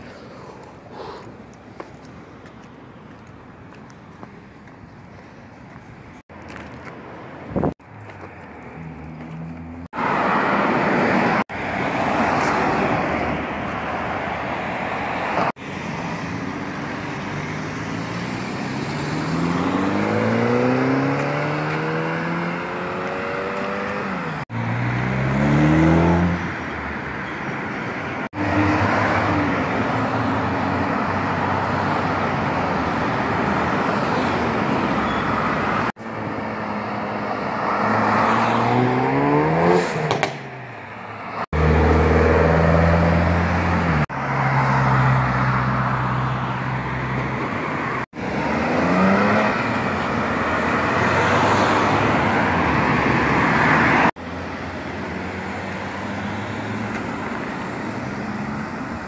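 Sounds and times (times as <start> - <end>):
cars passing and accelerating: 0.0 - 59.0.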